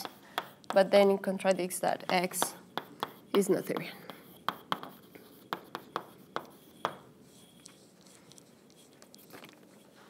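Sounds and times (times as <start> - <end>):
chalk writing on blackboard: 0.0 - 0.9, 2.0 - 9.2.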